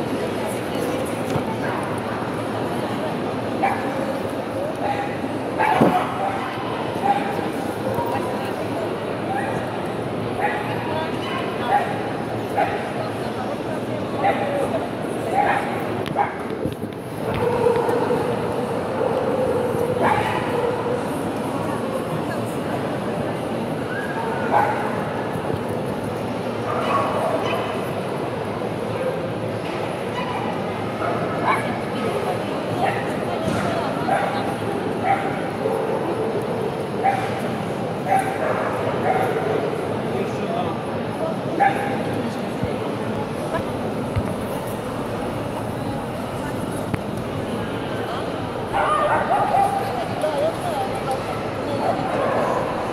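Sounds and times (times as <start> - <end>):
crowd chatter: 0.0 - 52.9.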